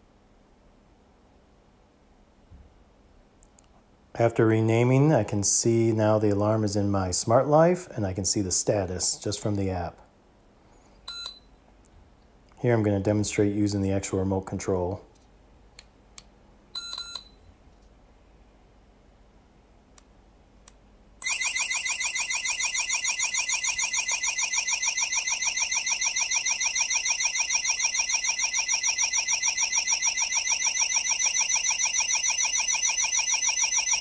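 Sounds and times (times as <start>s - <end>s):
short high beep: 11.1s - 11.5s, 16.8s - 17.4s
alarm siren warbling: 21.2s - 34.0s.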